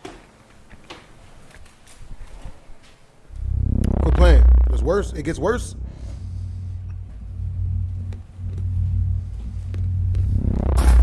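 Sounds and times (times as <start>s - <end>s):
loud noise: 3.3s - 11.0s
ominous droning background music: 3.3s - 11.0s.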